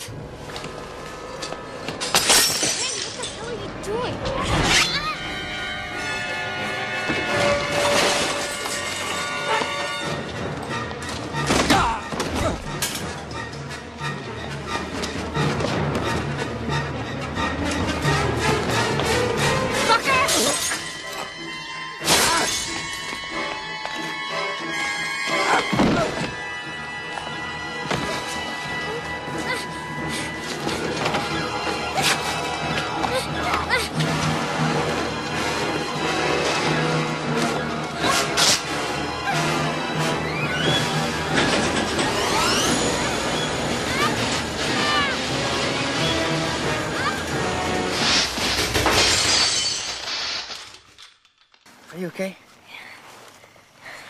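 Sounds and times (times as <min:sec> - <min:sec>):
tense orchestral score: 0:00.0 - 0:49.0
glass bottle shattering: 0:02.1 - 0:03.4, 0:48.0 - 0:51.6
glass fragments tinkling: 0:02.1 - 0:03.6, 0:48.9 - 0:51.7.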